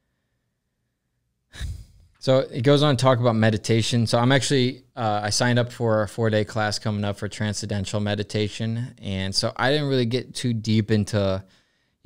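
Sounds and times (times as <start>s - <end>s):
short breath drawn in: 1.5s - 2.2s.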